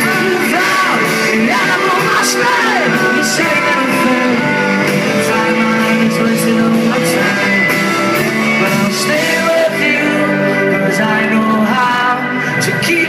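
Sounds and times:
rock band playing live: 0.0 - 13.0.

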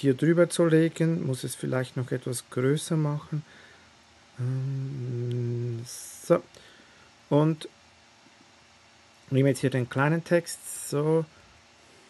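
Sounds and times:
man humming: 4.4 - 6.4.

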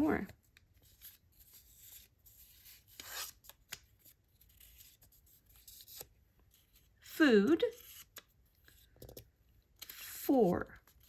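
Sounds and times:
paper cards rustling: 0.0 - 7.0.

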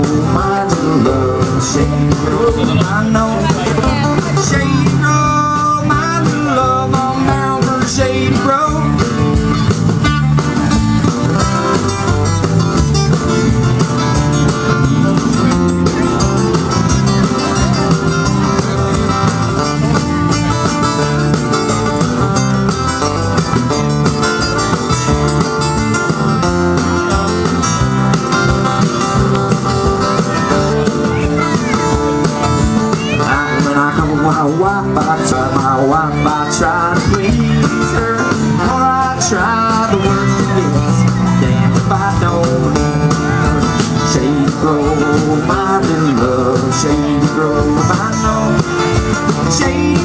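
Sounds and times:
person singing: 0.0 - 12.2, 30.1 - 50.0
live folk band playing: 0.0 - 50.0.

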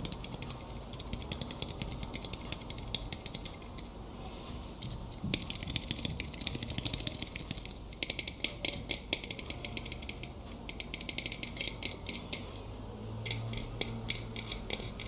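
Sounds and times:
fingernails tapping on object: 0.0 - 3.9, 5.2 - 12.4, 13.2 - 15.0.

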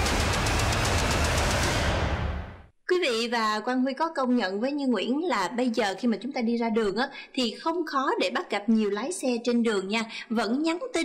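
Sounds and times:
rapid ticking: 0.0 - 2.2
heavy bass: 0.0 - 2.7.

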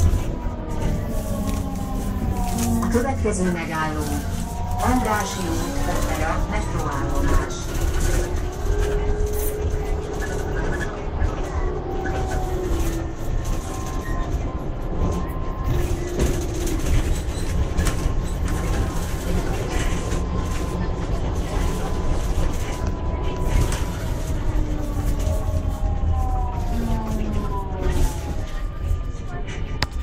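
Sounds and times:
trolleybus rumble: 0.0 - 30.0.

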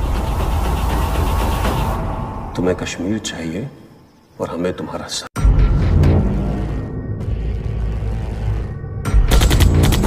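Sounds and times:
battle soundtrack music: 5.4 - 10.0.

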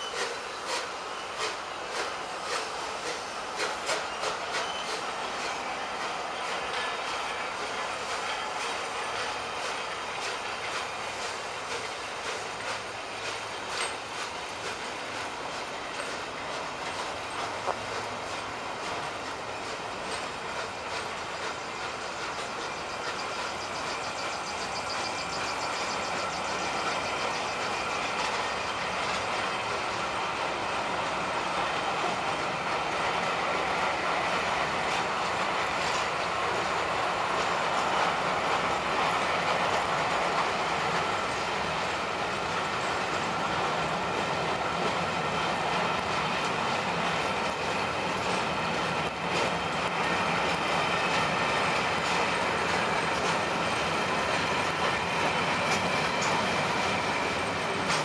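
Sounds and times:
train wheels rumbling on track: 0.0 - 58.0
wheels clicking over rail joints: 0.0 - 58.0.

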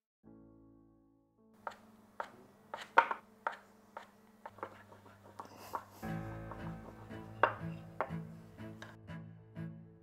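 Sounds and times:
music with low held notes: 0.3 - 10.0
cleaver knocking on wooden board: 1.6 - 8.9.

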